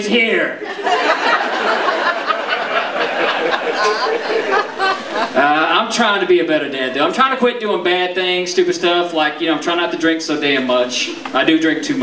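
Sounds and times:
audience laughing: 0:00.6 - 0:06.0, 0:08.9 - 0:11.6
crowd chatter: 0:00.7 - 0:12.0.

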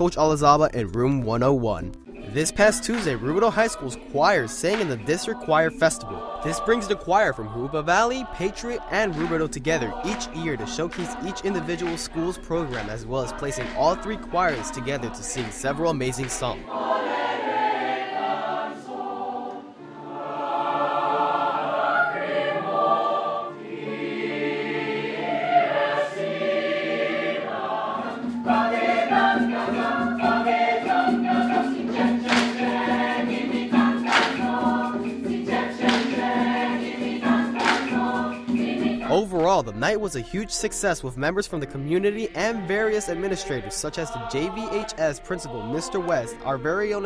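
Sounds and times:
mixed choir singing: 0:02.2 - 0:39.8, 0:41.6 - 0:47.0.

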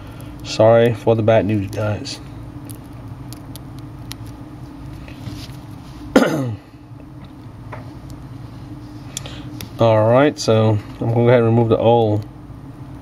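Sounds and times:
steady low hum: 0:00.0 - 0:13.0
man clearing throat: 0:06.1 - 0:06.7.

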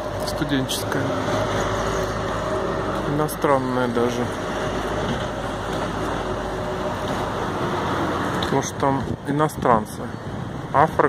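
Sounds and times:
garbage truck engine running: 0:00.0 - 0:08.5.

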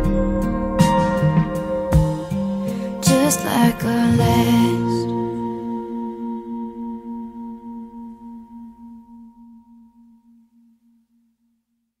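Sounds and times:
pop ballad chord held: 0:00.0 - 0:09.2.

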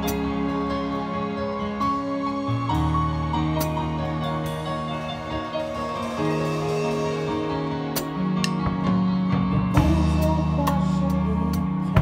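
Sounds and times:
recorded pop song: 0:00.0 - 0:12.0
drum and cymbal hits: 0:04.5 - 0:09.0, 0:09.7 - 0:10.8.

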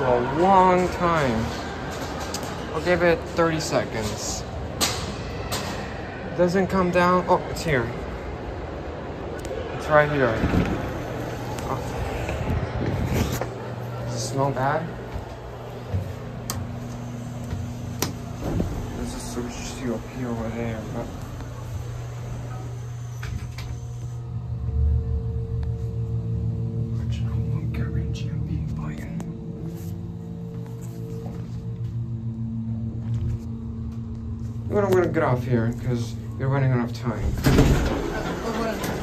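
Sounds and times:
elevator low hum: 0:00.0 - 0:39.0
faint higher tones: 0:13.4 - 0:37.3.

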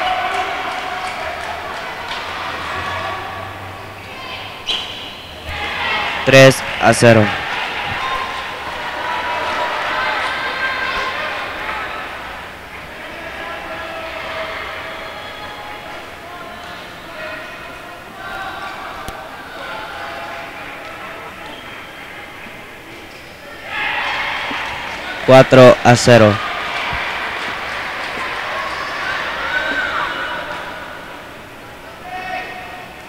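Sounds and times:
murmur of many voices: 0:00.0 - 0:33.0.

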